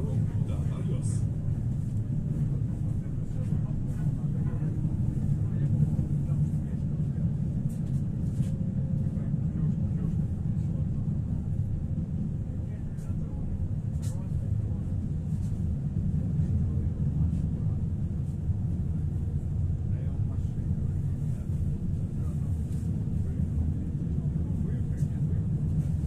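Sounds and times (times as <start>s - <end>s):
tram wheels rumbling on rails: 0.0s - 26.0s.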